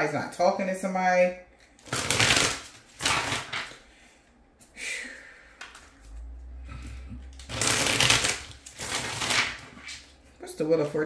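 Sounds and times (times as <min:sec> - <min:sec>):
cards being shuffled: 0:01.8 - 0:03.8, 0:07.3 - 0:10.1.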